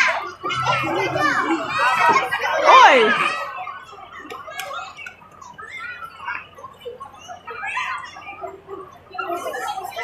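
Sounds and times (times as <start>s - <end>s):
children chattering and shouting: 0.0s - 10.0s.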